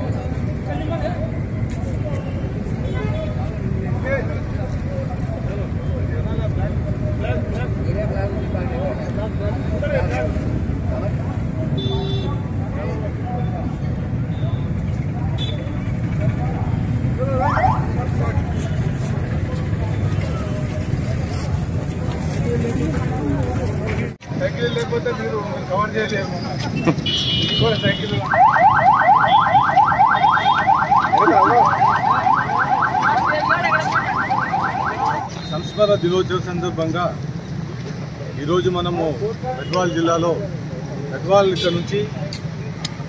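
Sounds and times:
indistinct voices talking: 0:00.0 - 0:43.0
street traffic rumble: 0:00.0 - 0:43.0.

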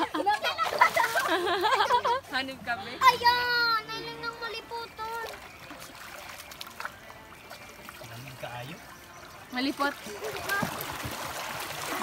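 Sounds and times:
water splashing around feet: 0:00.0 - 0:02.2, 0:04.7 - 0:12.0
water running along concrete channel: 0:00.0 - 0:12.0.

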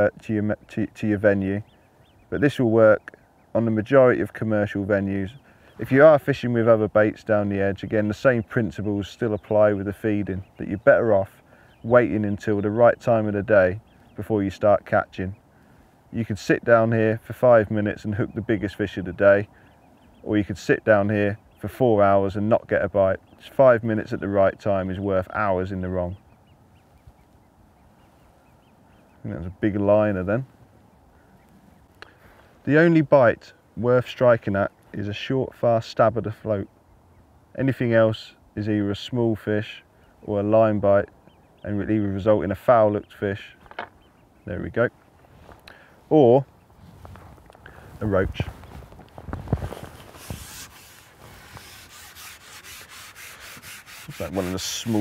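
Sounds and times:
fishing pole knocks: 0:43.6 - 0:44.0
rubbing strokes: 0:46.7 - 0:55.0.

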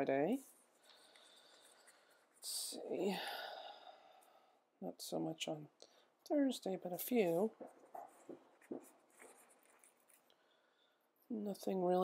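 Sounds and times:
soft taps on paper: 0:07.6 - 0:09.9
paper sticker sheet rustling: 0:07.6 - 0:10.4.

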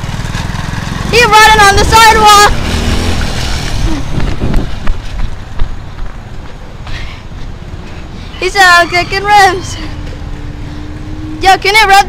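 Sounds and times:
vehicle engine running: 0:00.0 - 0:12.0
wind rumbling on microphone: 0:02.3 - 0:06.6.

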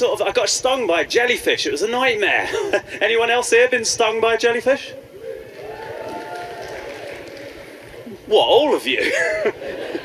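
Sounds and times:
audience applause: 0:05.5 - 0:08.2.

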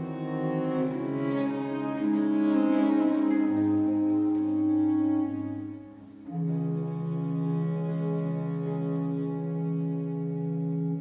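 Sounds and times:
string orchestra held chords: 0:00.0 - 0:11.0.

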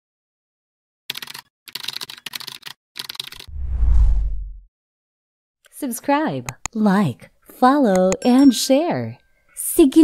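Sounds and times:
deep bass whoosh: 0:03.5 - 0:04.6.

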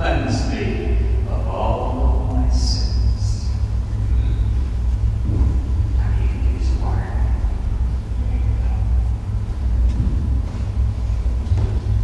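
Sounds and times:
low room noise rumble: 0:00.0 - 0:12.0.

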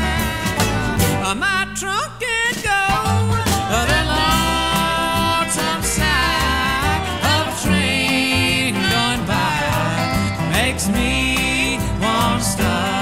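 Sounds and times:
bluegrass band playing: 0:00.0 - 0:01.4, 0:02.6 - 0:13.0.

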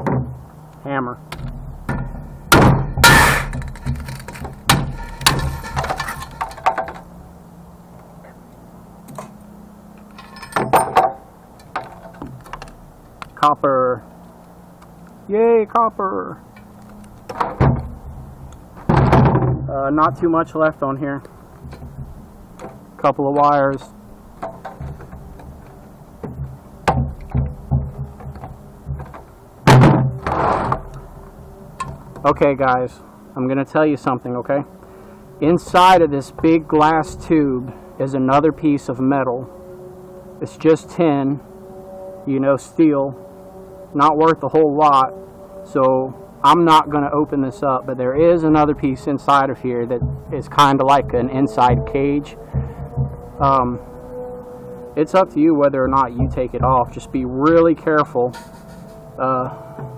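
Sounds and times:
hammer striking glass: 0:01.9 - 0:03.6
knocks and glass clinks: 0:10.2 - 0:12.3
scrape: 0:58.4 - 0:59.0.

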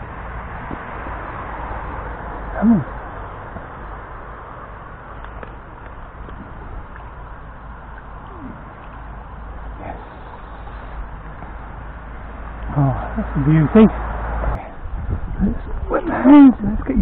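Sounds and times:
stream flowing over riffles: 0:00.1 - 0:14.6
faint sounds falling in pitch: 0:02.5 - 0:03.0, 0:05.7 - 0:11.5.

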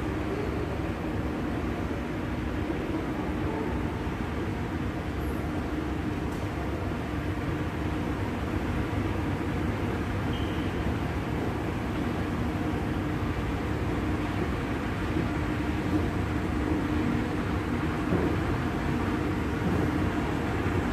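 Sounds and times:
moving walkway humming: 0:00.0 - 0:20.9.

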